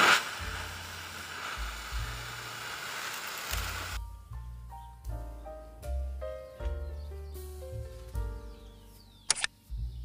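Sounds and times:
gas flame hissing: 0.0s - 4.0s
background music with bass: 0.0s - 10.0s.

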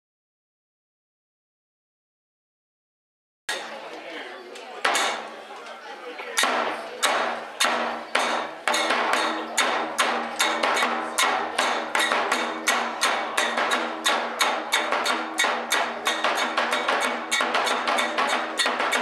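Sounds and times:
hand cymbals clashing: 6.4s - 19.0s
large drum beating: 6.4s - 19.0s.

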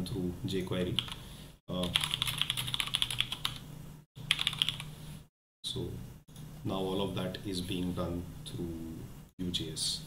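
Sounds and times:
typing on computer keyboard: 1.8s - 3.6s, 4.3s - 4.9s.

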